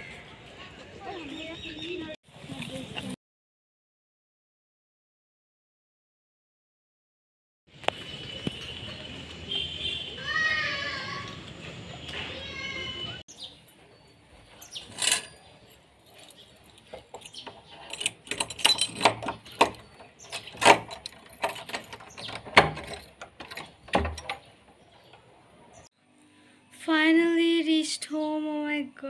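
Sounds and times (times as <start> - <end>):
street noise: 0.0 - 3.2, 7.7 - 26.2
keys jingling in door lock: 14.6 - 24.5.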